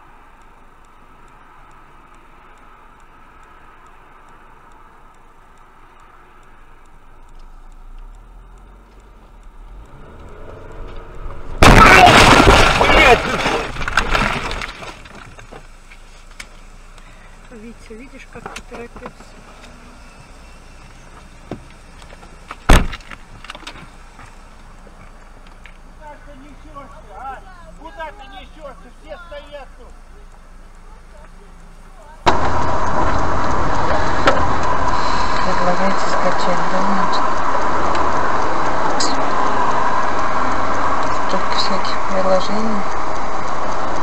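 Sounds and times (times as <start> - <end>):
road and engine noise inside car: 0.0 - 44.0
faint voices: 26.0 - 32.3.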